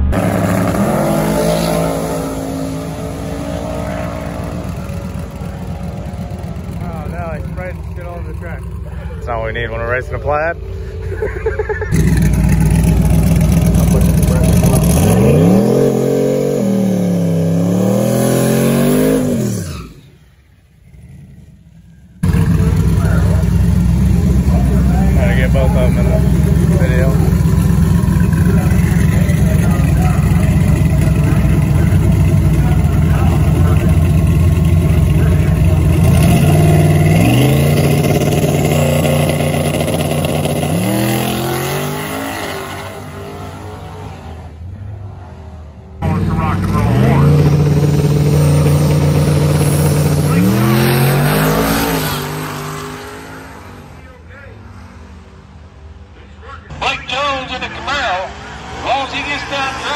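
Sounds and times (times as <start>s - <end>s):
drag car engine revving: 0.0s - 54.6s, 56.8s - 59.9s.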